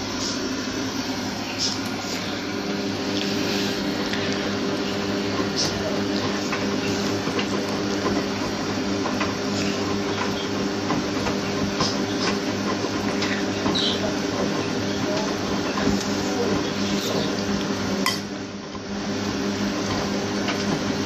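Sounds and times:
washing machine motor hum: 0:00.0 - 0:21.0.

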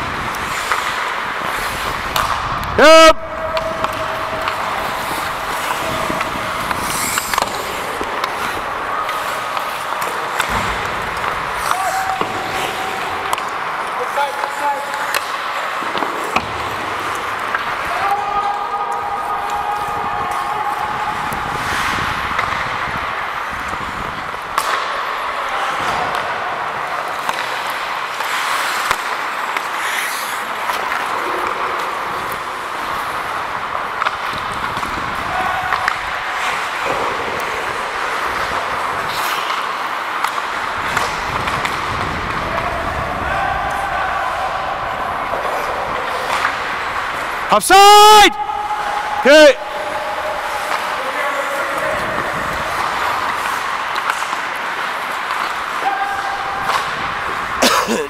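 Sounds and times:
skates scraping on ice: 0:00.0 - 0:58.0
sticks and puck clacking: 0:00.0 - 0:58.0
players calling out: 0:02.8 - 0:22.7, 0:42.4 - 0:54.3.

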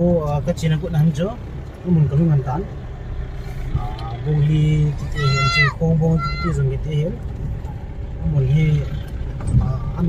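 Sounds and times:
vehicle driving rumble: 0:00.0 - 0:10.0.

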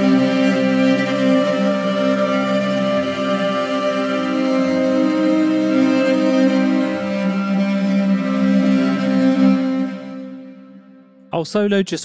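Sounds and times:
sustained chord cello and sax: 0:00.0 - 0:11.2.

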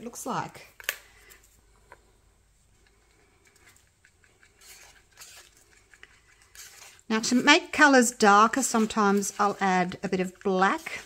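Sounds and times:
stir stick scraping cup: 0:02.8 - 0:11.0.

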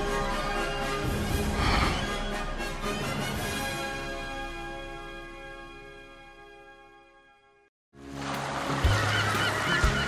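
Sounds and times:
seabirds chirping calls: 0:08.9 - 0:10.0.

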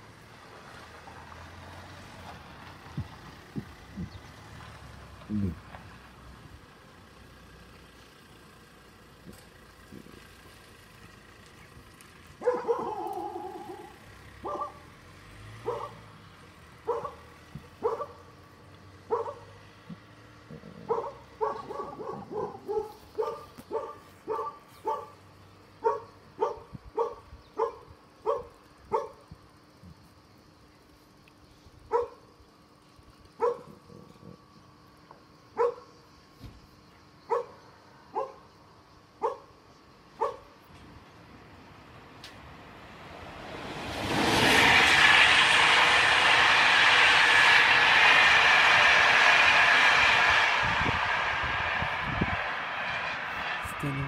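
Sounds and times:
dog barking: 0:12.4 - 0:14.8, 0:15.6 - 0:16.0, 0:16.8 - 0:17.2, 0:17.8 - 0:18.2, 0:19.1 - 0:19.5, 0:20.8 - 0:25.2, 0:25.8 - 0:29.2, 0:31.9 - 0:32.2, 0:33.4 - 0:33.8, 0:35.6 - 0:35.9, 0:37.3 - 0:38.4, 0:39.2 - 0:39.5, 0:40.2 - 0:40.5.

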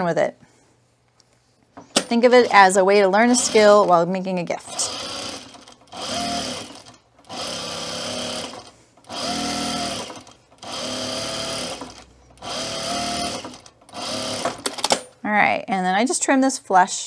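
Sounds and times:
sewing machine stitching: 0:03.2 - 0:04.0, 0:04.6 - 0:14.9.

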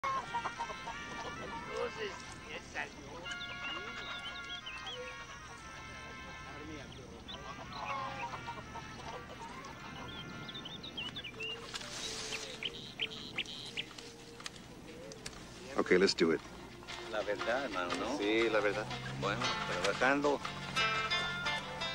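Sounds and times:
chickens clucking and squawking: 0:00.0 - 0:02.4, 0:06.9 - 0:15.2
small birds chirping: 0:00.1 - 0:21.9.

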